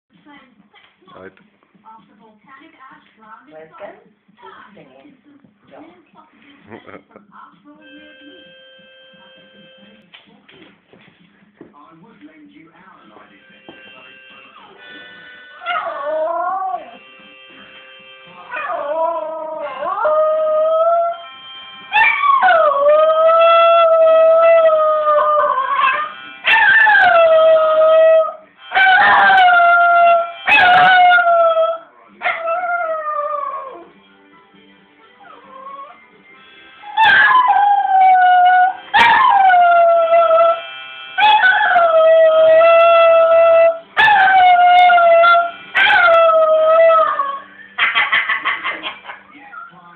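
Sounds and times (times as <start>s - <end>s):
harmonica tones: 7.8s - 10.0s, 13.1s - 20.0s, 20.9s - 22.4s, 25.6s - 27.5s, 28.5s - 31.2s, 35.4s - 47.8s
dog howling: 15.6s - 16.8s, 22.0s - 33.9s, 36.9s - 40.6s, 41.2s - 48.0s.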